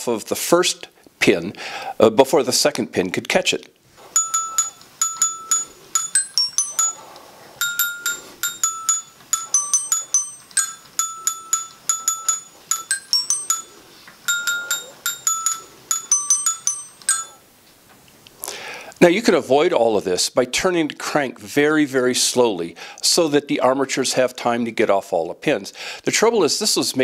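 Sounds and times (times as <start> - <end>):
glockenspiel music box tune: 4.1 - 17.4.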